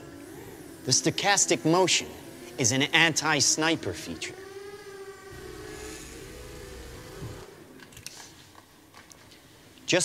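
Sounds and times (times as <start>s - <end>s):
drone propellers humming: 0.0s - 7.8s.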